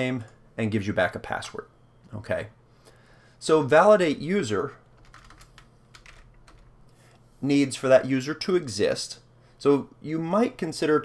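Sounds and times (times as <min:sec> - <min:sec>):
faint typing on keyboard: 0:04.8 - 0:07.2.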